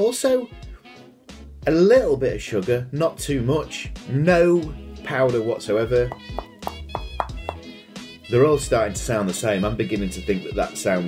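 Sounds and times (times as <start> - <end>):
festive background music: 0.3 - 11.0
fingers tapping on pastry: 6.1 - 7.6.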